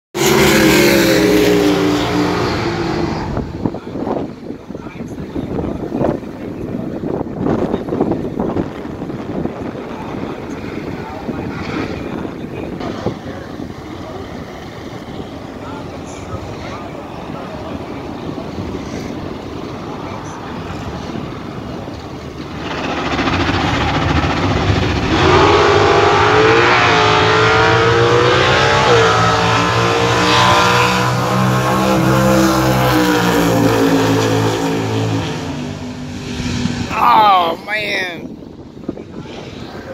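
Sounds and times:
race car engines rumbling: 0.1 - 39.9
race cars accelerating full throttle: 0.2 - 39.9.

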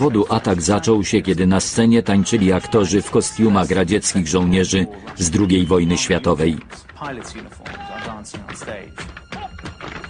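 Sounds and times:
music: 0.0 - 10.0
tap shoes on floor: 2.3 - 10.0.

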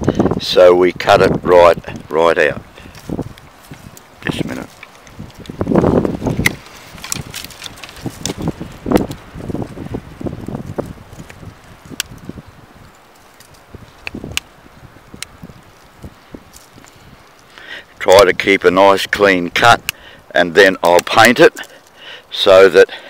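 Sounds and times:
branches rustling: 0.0 - 23.0
pruning tool clicks: 2.9 - 5.6, 6.3 - 9.2, 11.2 - 12.2.

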